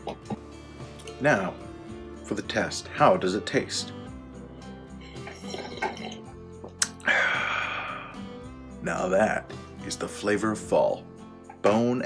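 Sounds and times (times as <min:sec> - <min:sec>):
loud breathy exhale: 0:07.0 - 0:08.3.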